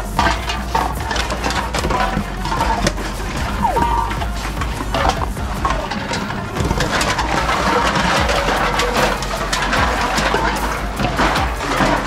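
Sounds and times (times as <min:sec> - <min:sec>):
cans and bottles clattering: 0:00.0 - 0:12.0.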